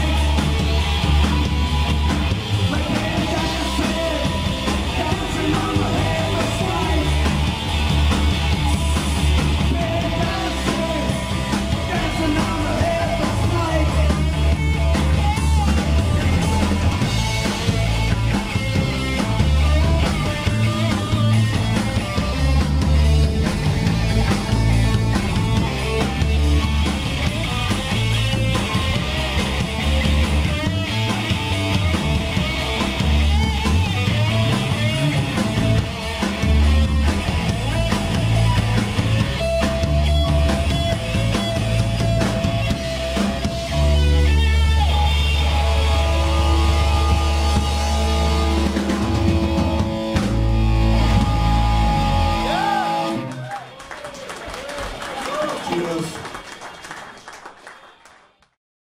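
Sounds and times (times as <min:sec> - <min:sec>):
punk rock band playing: 0:00.0 - 0:53.8.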